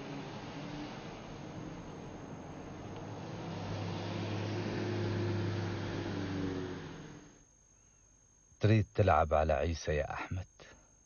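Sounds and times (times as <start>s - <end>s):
tyre and road noise: 0.0s - 7.4s
car engine hum: 0.0s - 7.5s.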